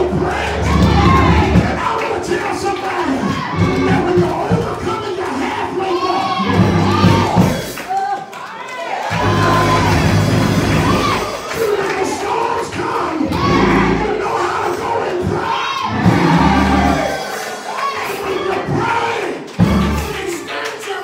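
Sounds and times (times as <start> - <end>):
congregation shouting and cheering: 0.0 - 21.0
low held instrumental chords: 9.1 - 11.2, 13.3 - 14.2, 16.0 - 17.1, 19.6 - 20.2
person shouting over microphone: 12.5 - 17.2.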